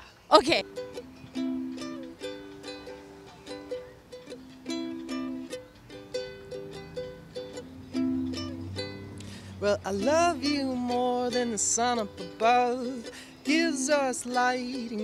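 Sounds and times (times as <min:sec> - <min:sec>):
ukulele strummed chords: 0:00.6 - 0:15.0.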